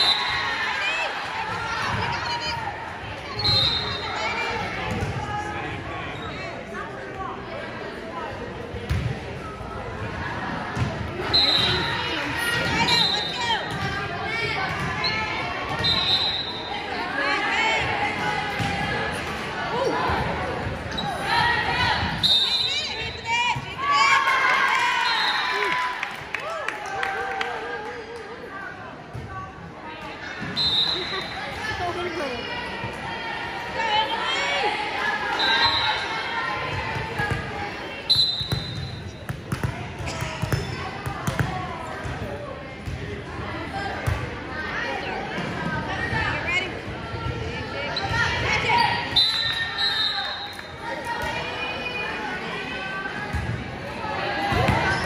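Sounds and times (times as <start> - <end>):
voices echoing in hall: 0.0 - 55.0
sneakers squeaking: 3.2 - 5.2, 14.7 - 16.8, 20.7 - 23.9, 36.8 - 41.5, 54.5 - 55.0
referee whistle blasts: 3.4 - 4.2, 15.7 - 16.7, 22.2 - 23.1, 30.5 - 31.4, 38.1 - 39.2, 49.1 - 50.7.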